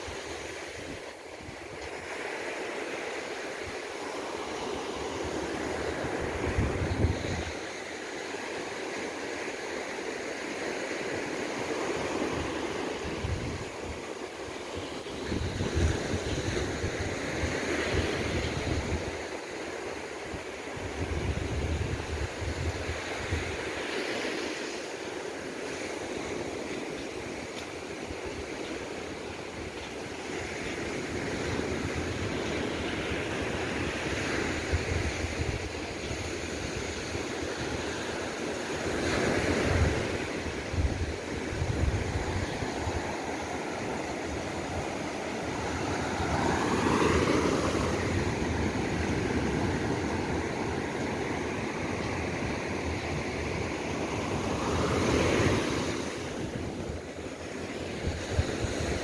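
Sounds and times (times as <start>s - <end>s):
surf breaking on beach: 0.0s - 59.0s
wind gusting on microphone: 4.5s - 7.9s, 11.2s - 19.4s, 20.0s - 59.0s.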